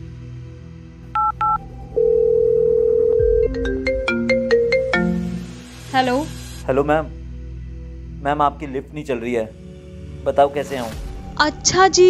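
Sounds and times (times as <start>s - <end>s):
soft background music: 0.0s - 12.0s
phone keypad beeps: 1.2s - 3.4s
steady phone tone: 1.2s - 5.4s
ringtone notes: 1.2s - 6.2s.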